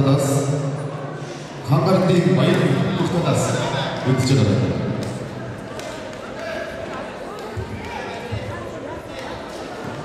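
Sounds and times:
indistinct chatter in a hall: 0.0s - 10.0s.

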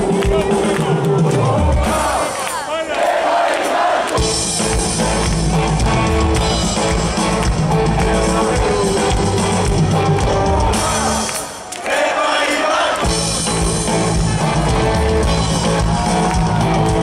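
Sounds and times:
live rock band playing: 0.0s - 2.3s, 4.2s - 11.6s, 13.0s - 17.0s.

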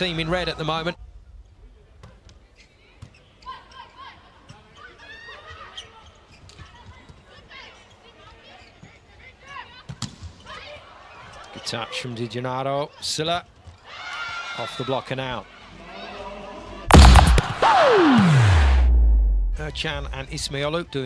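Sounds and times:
volleyball being hit: 16.9s - 19.0s.

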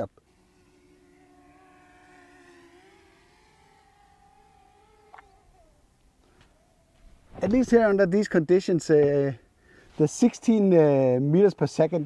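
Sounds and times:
drone propellers whining: 0.0s - 8.0s.

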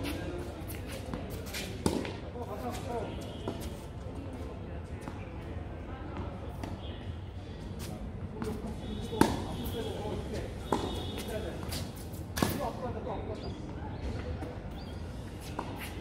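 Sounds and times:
tennis ball hit with rackets: 1.8s - 2.2s, 9.1s - 9.6s, 10.7s - 12.8s.

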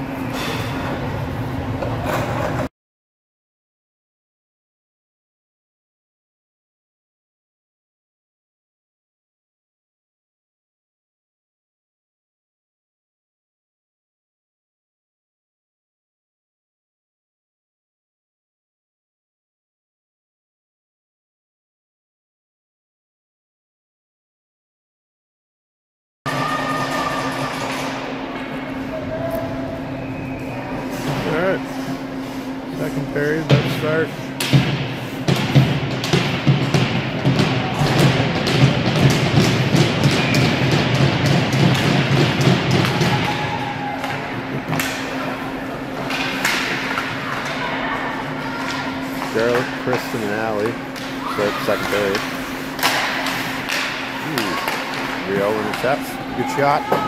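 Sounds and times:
steady hum: 0.0s - 2.7s, 26.3s - 57.0s
voices echoing in arena: 26.3s - 34.5s, 42.4s - 57.0s
pucks and sticks hitting boards: 33.4s - 47.7s, 48.5s - 57.0s.

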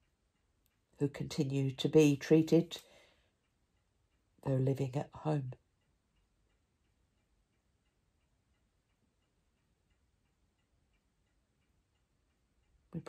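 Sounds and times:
clock ticking: 0.0s - 13.0s.

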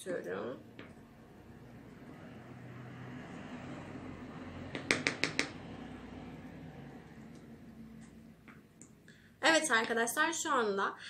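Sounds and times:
spoon knocking against a bowl: 4.7s - 5.6s.

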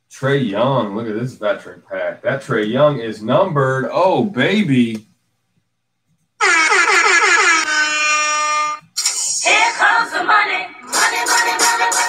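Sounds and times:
air horn sound effect: 6.4s - 8.8s.

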